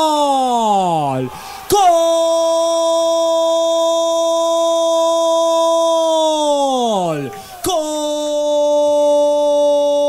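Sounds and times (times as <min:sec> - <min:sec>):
commentator's long held shout: 0:00.0 - 0:10.0.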